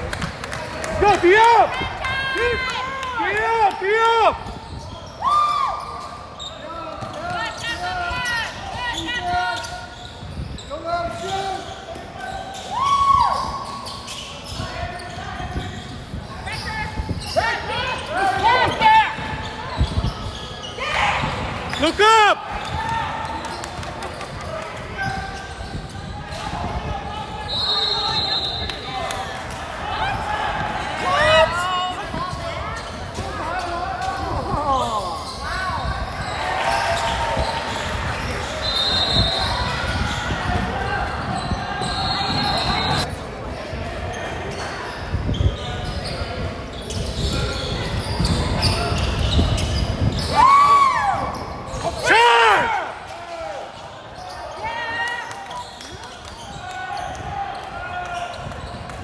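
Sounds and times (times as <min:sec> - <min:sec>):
sneakers squeaking on hardwood floor: 0:04.5 - 0:05.2, 0:05.8 - 0:12.7, 0:13.4 - 0:21.9, 0:44.1 - 0:50.4, 0:53.7 - 0:54.6, 0:55.6 - 0:59.0.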